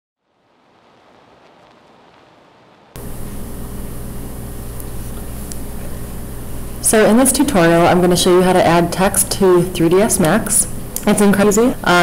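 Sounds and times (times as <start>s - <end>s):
microphone hiss: 0.2s - 12.0s
steady low hum: 0.3s - 12.0s.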